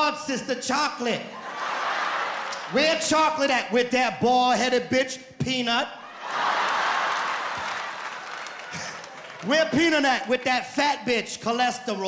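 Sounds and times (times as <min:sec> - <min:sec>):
audience laughing and applauding: 0:01.4 - 0:03.1, 0:06.2 - 0:09.8.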